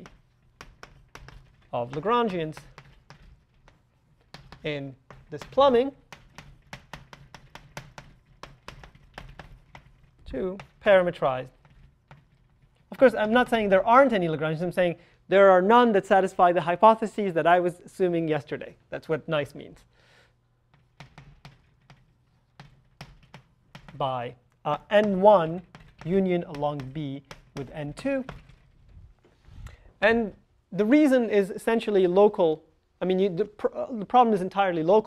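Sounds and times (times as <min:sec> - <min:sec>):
chalk tapping on blackboard: 0:00.0 - 0:13.7, 0:20.7 - 0:28.6.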